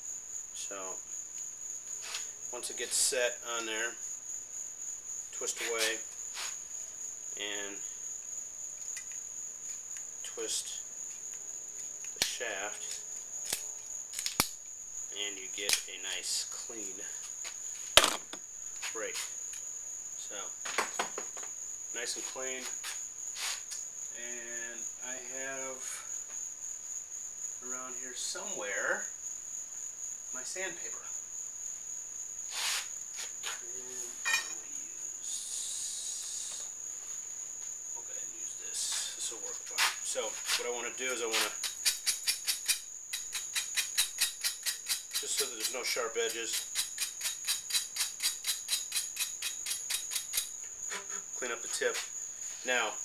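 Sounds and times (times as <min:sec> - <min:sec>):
sandpaper scratching metal: 0:32.5 - 0:32.9.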